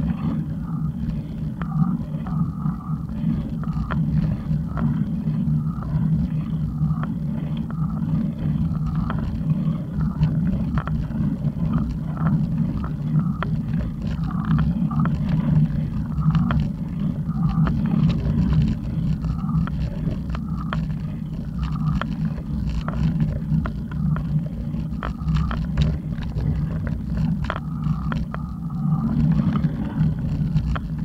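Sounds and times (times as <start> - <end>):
wind and road noise rumble: 0.0 - 31.0.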